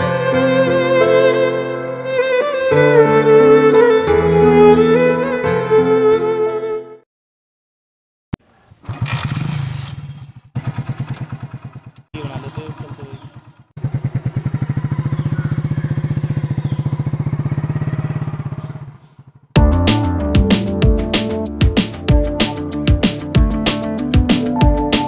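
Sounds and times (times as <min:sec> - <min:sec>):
music: 0:00.0 - 0:07.0, 0:19.6 - 0:25.0
motorcycle engine idling: 0:08.4 - 0:19.6.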